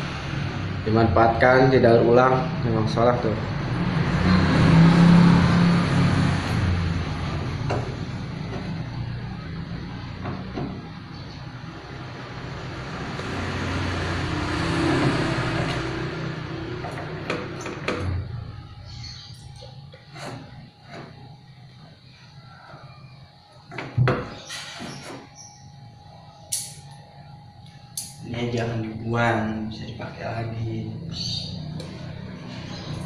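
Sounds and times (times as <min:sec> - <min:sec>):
vehicle engine running: 0:00.0 - 0:22.4.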